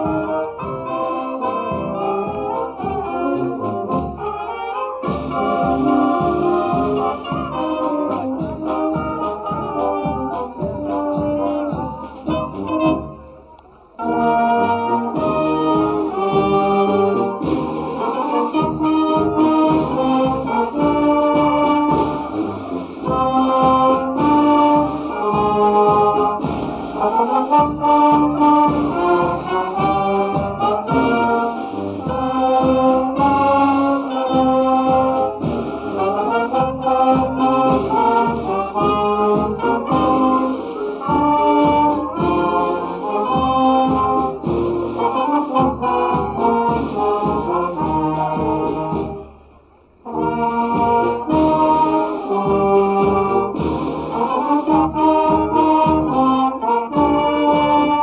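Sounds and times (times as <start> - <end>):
brass and wind band playing: 0.0 - 58.0.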